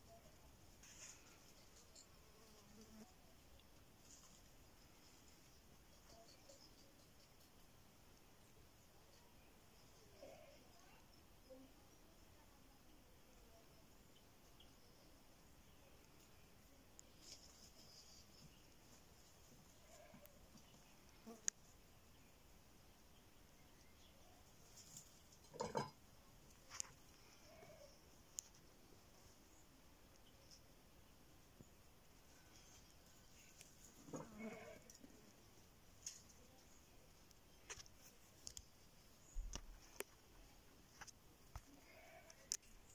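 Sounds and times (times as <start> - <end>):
faint click: 21.4 - 21.7.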